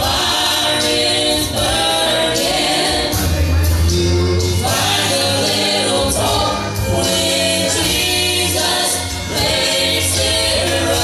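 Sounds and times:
gospel quartet singing in harmony: 0:00.0 - 0:11.0.

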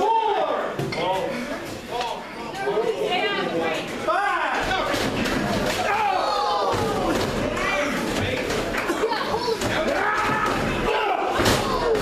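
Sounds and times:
audience shouting: 0:05.7 - 0:07.2, 0:09.7 - 0:12.0.

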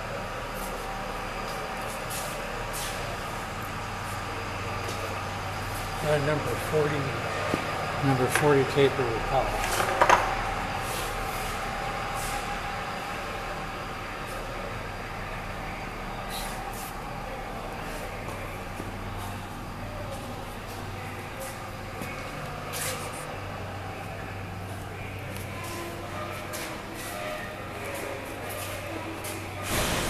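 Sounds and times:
shop machinery humming: 0:00.0 - 0:30.0.

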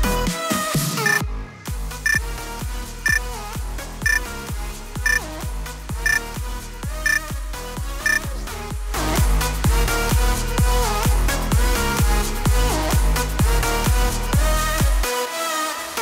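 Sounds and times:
electronic dance music: 0:07.0 - 0:07.2.

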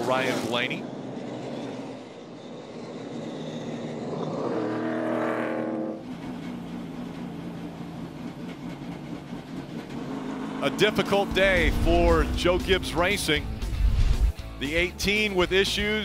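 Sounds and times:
race car engine passing: 0:00.0 - 0:06.6, 0:09.8 - 0:14.4
low engine drone: 0:00.0 - 0:14.6.

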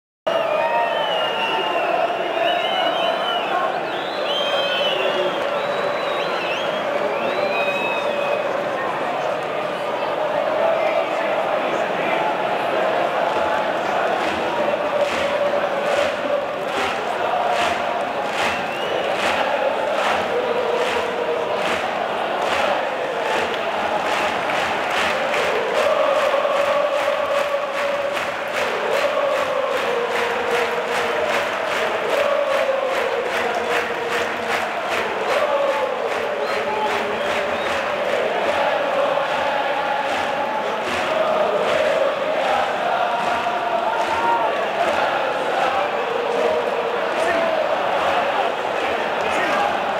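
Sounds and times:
crowd singing a chant: 0:00.3 - 0:49.9
rhythmic hand-clapping: 0:00.3 - 0:49.9.

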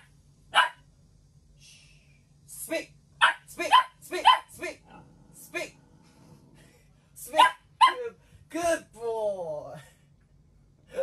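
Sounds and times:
puppy yapping: 0:00.0 - 0:00.8, 0:03.2 - 0:04.6, 0:07.3 - 0:08.1.

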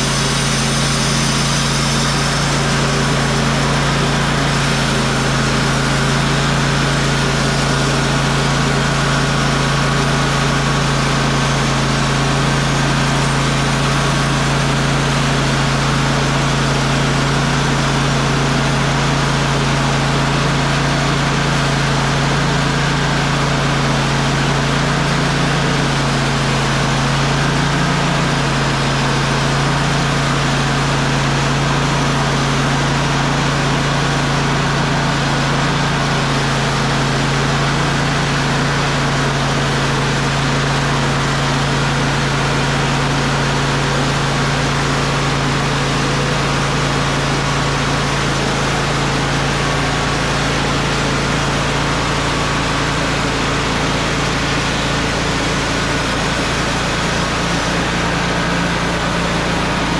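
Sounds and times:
band saw cutting log: 0:00.0 - 0:59.9
sawmill engine running: 0:00.0 - 0:59.9.

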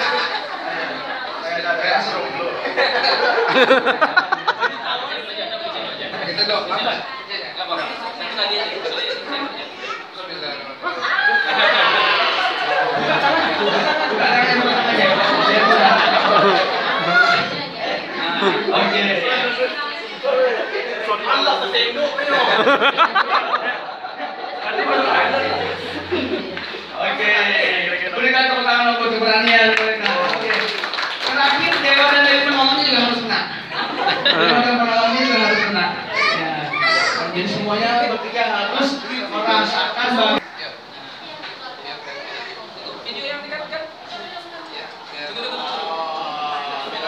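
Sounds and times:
people chattering: 0:00.0 - 0:47.0
people laughing: 0:02.1 - 0:05.4, 0:10.8 - 0:19.8, 0:20.5 - 0:27.4, 0:30.2 - 0:36.3.

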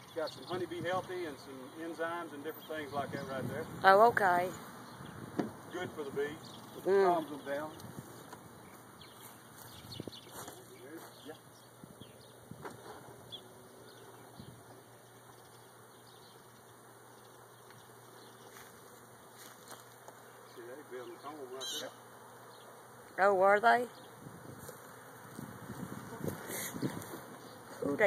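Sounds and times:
honeybee swarm humming: 0:00.0 - 0:28.0.

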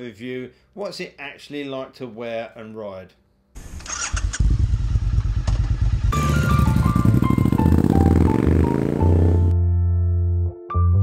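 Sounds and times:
motorcycle engine running: 0:04.1 - 0:09.5.

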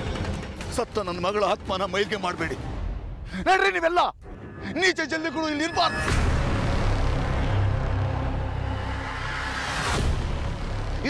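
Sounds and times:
ominous low drone music: 0:05.9 - 0:11.0.

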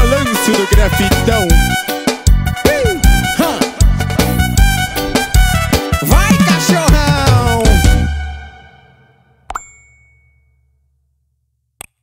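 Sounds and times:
bright ringing ding: 0:09.5 - 0:10.8.

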